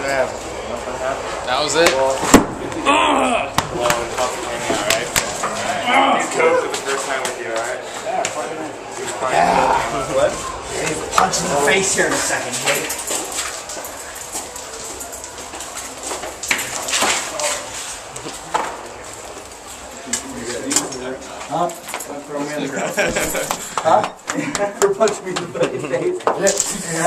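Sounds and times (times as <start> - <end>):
people talking: 0.0 - 13.1, 19.8 - 27.0.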